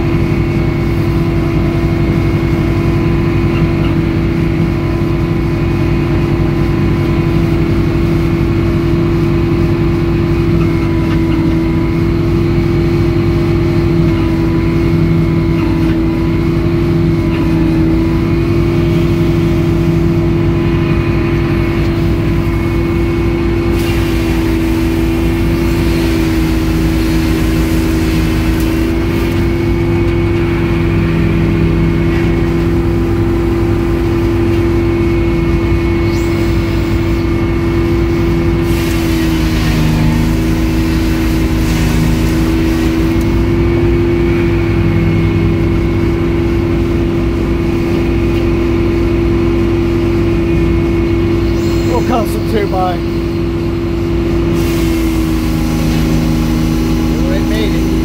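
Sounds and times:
sawmill hydraulics droning: 0.0 - 58.0
circular saw blade cutting log: 35.9 - 43.6, 54.5 - 58.0.

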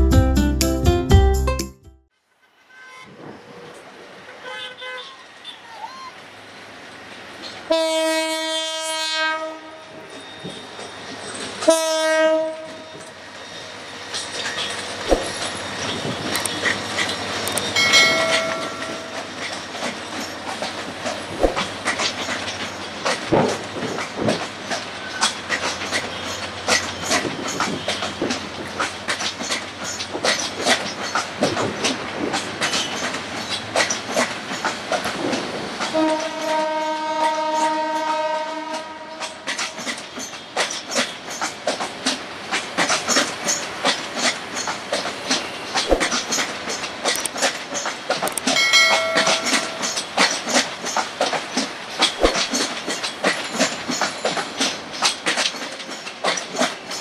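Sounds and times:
locomotive horn blast: 7.7 - 9.8, 11.6 - 13.0, 35.9 - 39.5
train wheels clattering over rails: 12.6 - 57.0.

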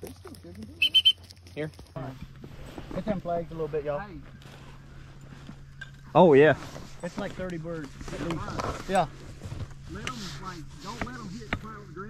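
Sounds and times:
short high-pitched tones: 0.8 - 1.2.

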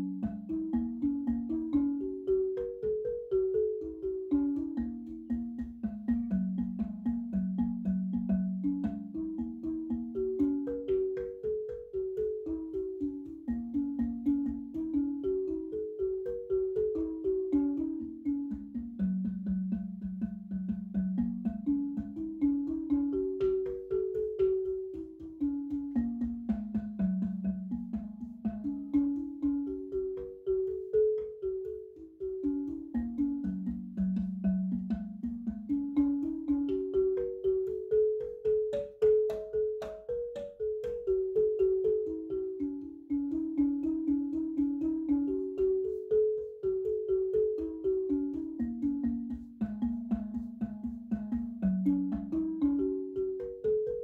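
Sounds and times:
marimba melody: 0.0 - 54.0.

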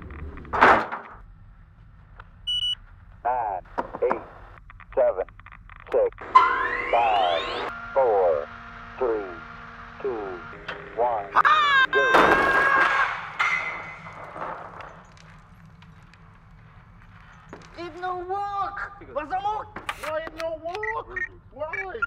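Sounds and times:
steady electronic tones: 2.4 - 12.2
rising electronic whine: 6.1 - 12.1
falling tonal sweeps: 6.2 - 14.0.

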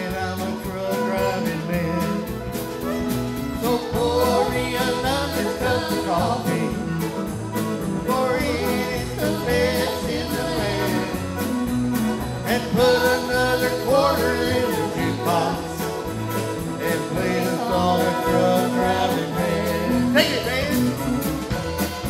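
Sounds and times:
live country band playing: 0.0 - 22.0.

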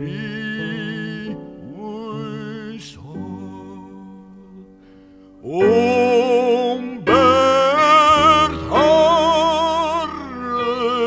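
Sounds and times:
person singing with vibrato: 0.0 - 11.0.

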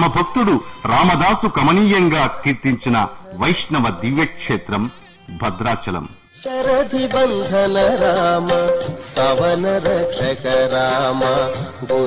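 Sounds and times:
person singing devotional melody: 6.1 - 12.0.

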